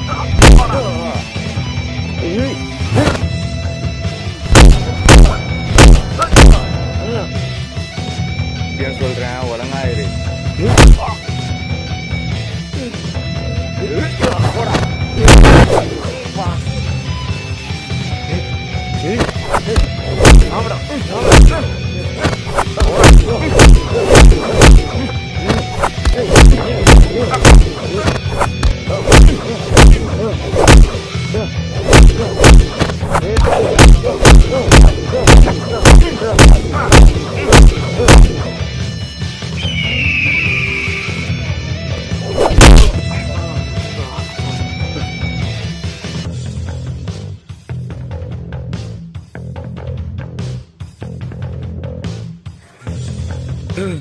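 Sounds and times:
dramatic background music: 0:00.0 - 0:50.6
heavy booming punch: 0:00.4 - 0:00.7, 0:04.4 - 0:06.8, 0:10.6 - 0:11.1, 0:15.2 - 0:15.8, 0:19.6 - 0:20.6, 0:21.2 - 0:21.6, 0:22.2 - 0:24.9, 0:25.5 - 0:31.0, 0:31.8 - 0:38.4, 0:42.4 - 0:43.0.

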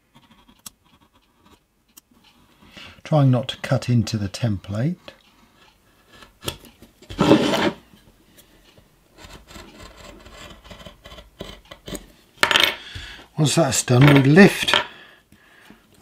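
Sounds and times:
knife scrape: 0:07.1 - 0:07.9.

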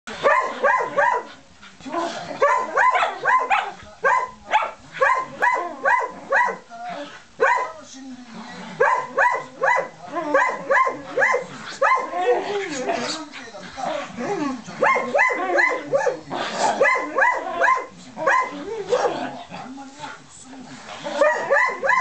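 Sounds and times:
dogs barking sharply: 0:00.1 - 0:01.3, 0:02.4 - 0:06.6, 0:08.8 - 0:12.1, 0:21.2 - 0:22.0.

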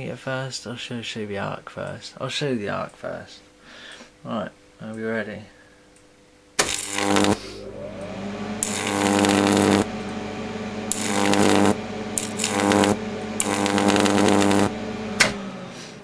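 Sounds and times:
high-voltage arc crackling: 0:06.6 - 0:07.6, 0:08.6 - 0:10.0, 0:10.9 - 0:14.8
sharp electric snap: 0:06.6 - 0:07.6, 0:08.6 - 0:09.9, 0:10.9 - 0:15.4
transformer humming deeply: 0:07.0 - 0:15.6.

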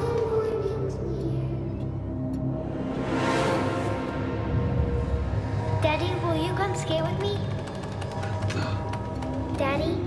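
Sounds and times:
horror film score drone: 0:00.0 - 0:10.0.

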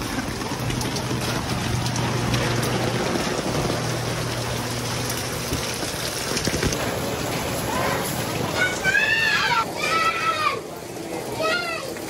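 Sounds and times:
children shouting: 0:07.6 - 0:12.0.

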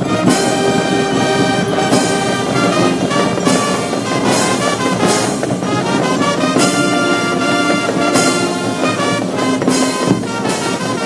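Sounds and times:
brass military band playing: 0:00.0 - 0:11.0.

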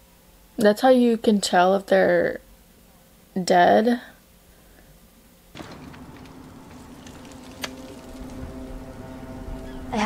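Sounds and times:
steady outdoor noise: 0:05.6 - 0:10.0.

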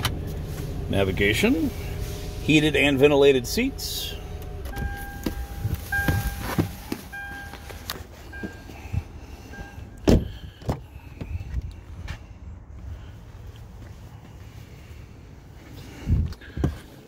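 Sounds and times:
car warning chime: 0:04.0 - 0:10.1
car door clunks: 0:04.5 - 0:09.0, 0:10.0 - 0:11.4.

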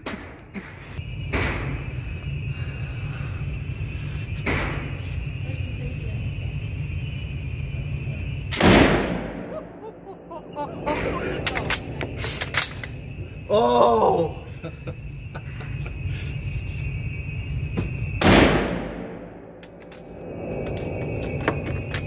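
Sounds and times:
steady low hum: 0:00.0 - 0:22.0
rifle shot in reverberant room: 0:08.5 - 0:09.6, 0:18.2 - 0:19.7.

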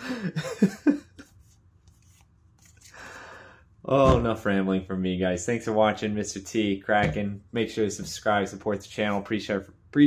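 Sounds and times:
man laughing: 0:00.0 - 0:01.3.

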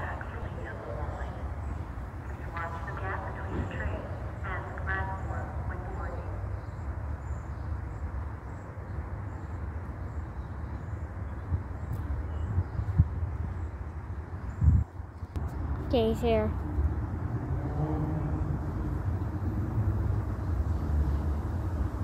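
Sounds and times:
outdoor rumble and hiss: 0:00.0 - 0:22.0
wind buffeting microphone: 0:00.0 - 0:22.0.

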